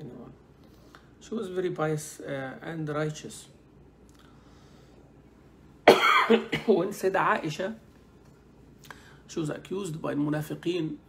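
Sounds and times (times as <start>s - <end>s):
man coughing: 5.8s - 6.9s.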